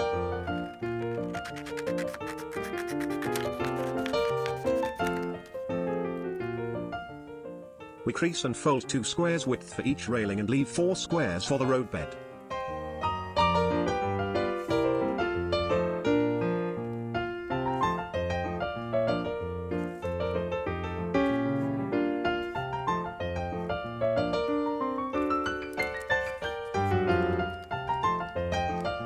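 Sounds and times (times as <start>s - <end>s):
piano music: 0.0s - 29.0s.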